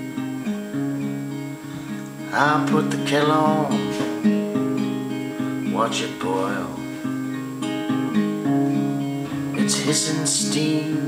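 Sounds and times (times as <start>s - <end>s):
acoustic guitar fingerpicking: 0.0s - 11.0s.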